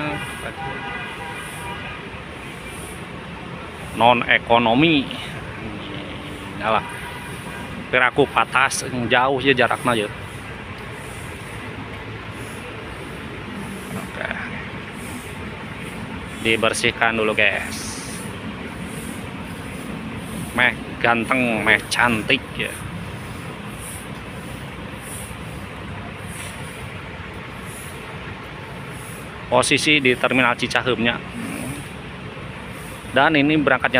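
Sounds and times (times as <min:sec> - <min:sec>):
diesel bus engines idling: 0:00.0 - 0:33.9
traffic rumble: 0:00.0 - 0:33.9.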